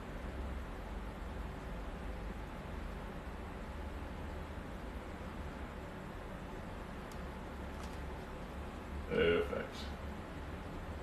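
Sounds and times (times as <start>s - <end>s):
low rumble of room noise: 0.0s - 11.0s.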